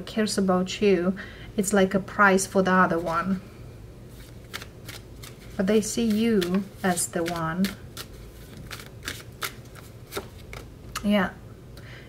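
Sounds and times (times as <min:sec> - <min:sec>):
cards sliding: 0:04.1 - 0:11.1.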